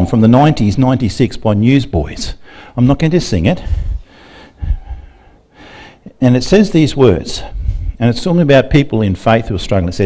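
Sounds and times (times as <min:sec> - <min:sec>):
man breathing into microphone: 0:02.4 - 0:02.8, 0:03.6 - 0:06.1, 0:07.4 - 0:08.0.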